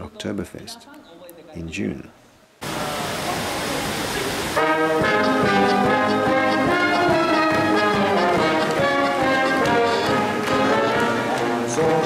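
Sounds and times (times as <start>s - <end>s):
background noise: 0.0s - 12.0s
folk brass band playing: 4.6s - 12.0s.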